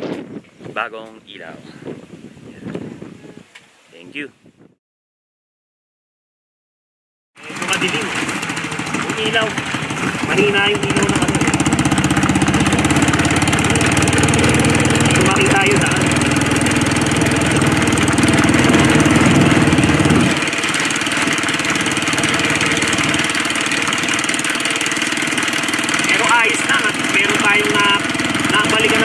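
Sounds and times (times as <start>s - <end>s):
motorcycle engine running: 7.4s - 29.0s.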